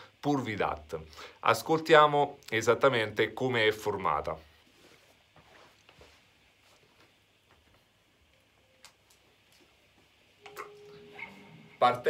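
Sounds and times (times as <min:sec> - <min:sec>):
faint steady tone: 0:07.7 - 0:12.0.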